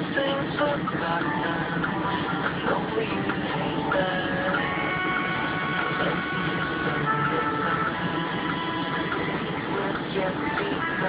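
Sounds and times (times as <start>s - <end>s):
music on car radio: 0.0s - 11.0s.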